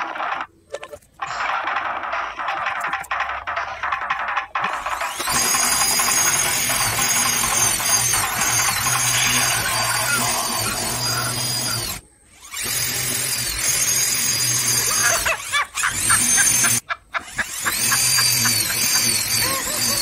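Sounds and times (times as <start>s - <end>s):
electric drill whining: 1.2s - 20.0s.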